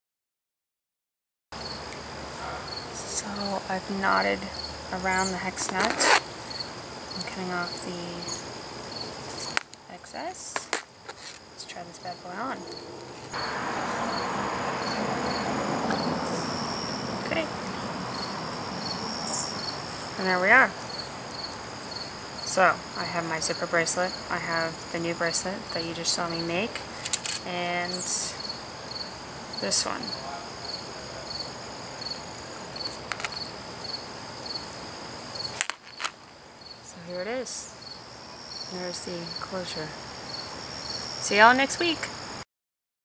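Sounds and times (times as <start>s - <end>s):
cricket chirping: 1.6s - 42.4s
steady hiss: 1.6s - 42.4s.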